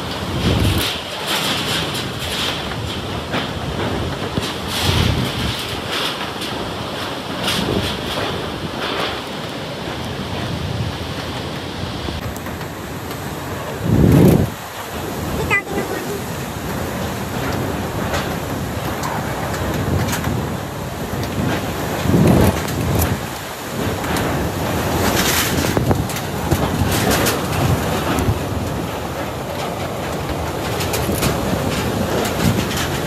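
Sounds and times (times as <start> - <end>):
strong wind gusts buffeting microphone: 0.0 - 33.0.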